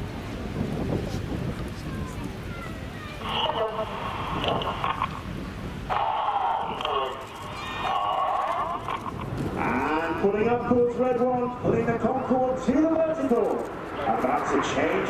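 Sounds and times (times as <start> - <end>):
commentator over loudspeakers: 3.2 - 5.0, 5.9 - 15.0.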